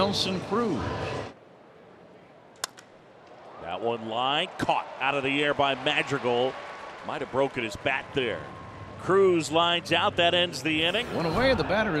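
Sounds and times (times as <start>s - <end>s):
baseball bat crack: 2.6s - 3.4s.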